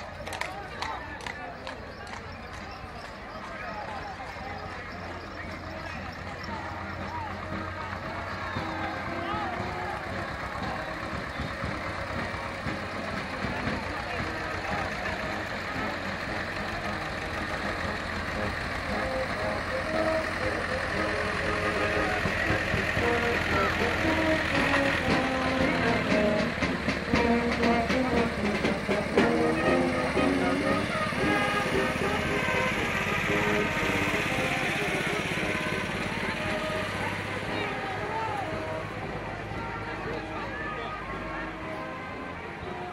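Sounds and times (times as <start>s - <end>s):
people's voices: 0.0s - 42.9s
procession music: 0.0s - 42.9s
tractor engines running: 0.0s - 42.9s.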